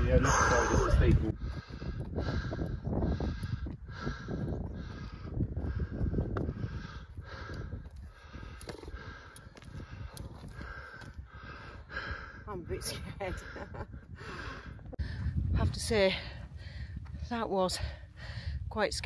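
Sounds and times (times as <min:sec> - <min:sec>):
wind rumble on microphone: 0:00.0 - 0:19.0
person breathing hard: 0:00.1 - 0:15.4, 0:16.2 - 0:17.2, 0:17.8 - 0:18.7.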